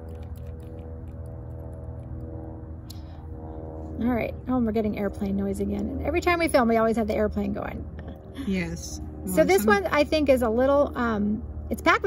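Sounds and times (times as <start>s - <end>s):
airplane drone: 0.0s - 12.0s.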